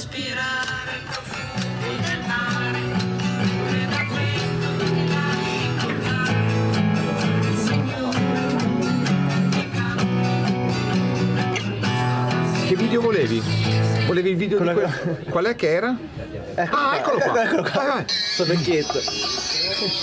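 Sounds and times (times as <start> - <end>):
acoustic guitar strumming: 0.1 - 14.6.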